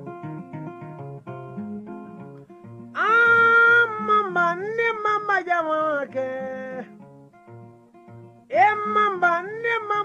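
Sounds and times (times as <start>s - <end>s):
plucked guitar accompaniment: 0.0s - 10.0s
person singing: 3.0s - 7.1s, 8.4s - 10.0s.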